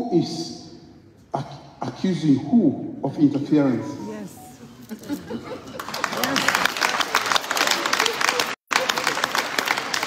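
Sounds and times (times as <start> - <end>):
audience applauding: 5.7 - 10.0.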